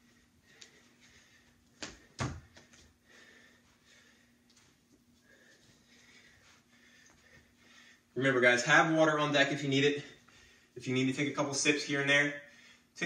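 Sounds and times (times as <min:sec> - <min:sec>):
person breathing: 0:00.0 - 0:08.2, 0:10.0 - 0:10.8, 0:12.4 - 0:13.0.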